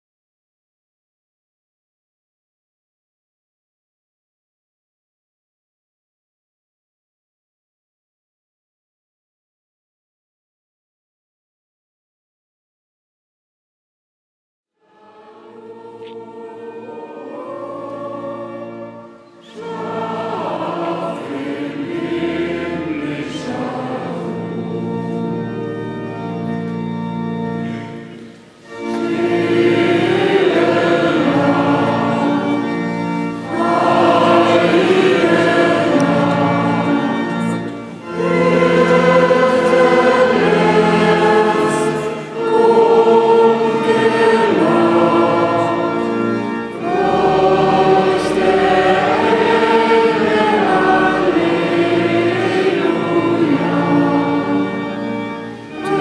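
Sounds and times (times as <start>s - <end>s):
choir singing a hymn: 14.8s - 56.0s.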